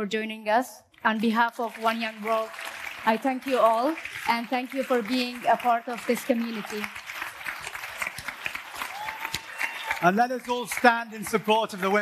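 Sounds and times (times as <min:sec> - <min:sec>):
audience applauding: 0:01.5 - 0:12.0.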